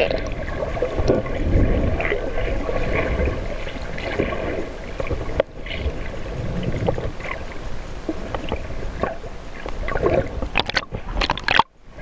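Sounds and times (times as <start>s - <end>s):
splashy crackles: 0.0s - 11.7s
faint high ticking: 0.0s - 12.0s
underwater rush of water: 0.0s - 12.0s.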